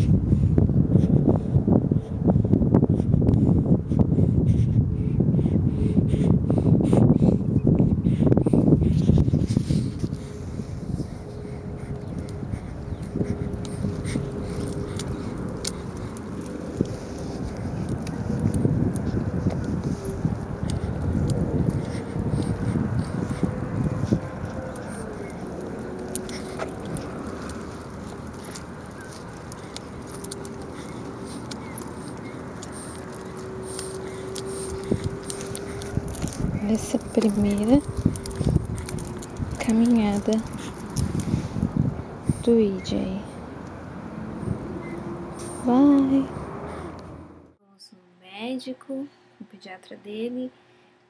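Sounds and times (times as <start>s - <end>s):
stroller wheels on pavement: 0.0s - 47.5s
wind on microphone: 0.0s - 47.5s.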